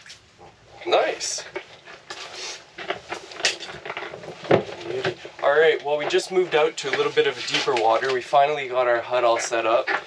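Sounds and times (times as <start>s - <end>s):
rustles and light clicks: 1.4s - 10.0s.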